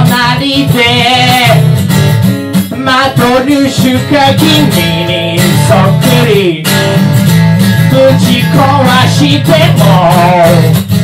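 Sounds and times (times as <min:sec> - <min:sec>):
man singing: 0:00.0 - 0:01.8, 0:02.7 - 0:07.0, 0:07.8 - 0:11.0
strummed acoustic guitar: 0:00.0 - 0:11.0.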